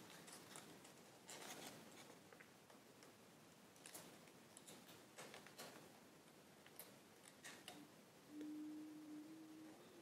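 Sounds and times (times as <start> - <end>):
faint steady low tone: 7.7 - 10.0.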